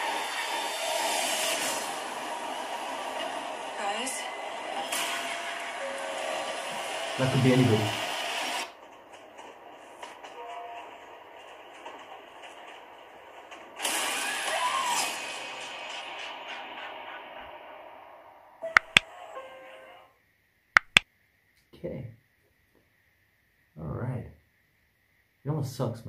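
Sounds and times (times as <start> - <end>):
sharp clicks: 18.8 - 19.0, 20.8 - 21.0.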